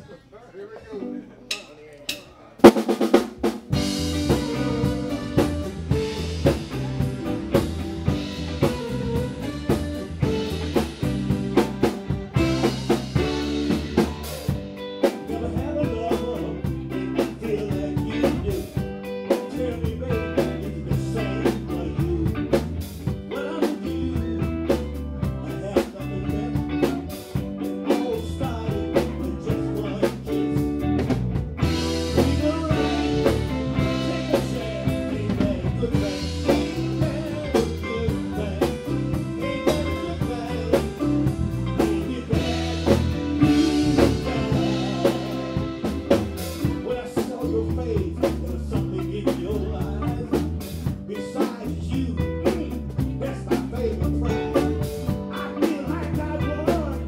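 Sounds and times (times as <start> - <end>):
drum kit beat: 1.5 - 57.0
electric guitar: 3.4 - 57.0
keyboard: 3.6 - 57.0.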